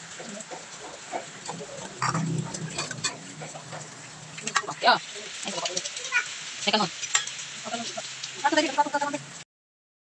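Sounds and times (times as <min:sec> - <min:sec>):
stew bubbling: 0:00.0 - 0:08.7
ladle scraping steel pot: 0:01.1 - 0:04.8.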